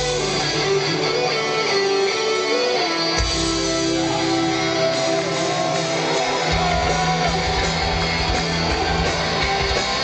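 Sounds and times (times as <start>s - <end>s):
electric guitars melodic line: 0.0s - 10.0s
heavy metal band playing live: 0.0s - 10.0s.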